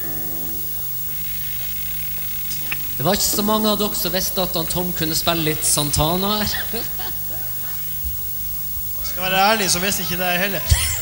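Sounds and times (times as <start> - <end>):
electric guitar chord ringing: 0.0 - 1.5
amplifier hum and hiss: 0.0 - 11.0.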